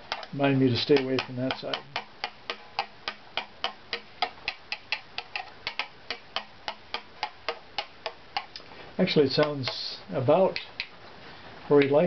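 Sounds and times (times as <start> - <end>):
rod tapping wooden violin plate: 0.0 - 8.7, 9.3 - 11.0.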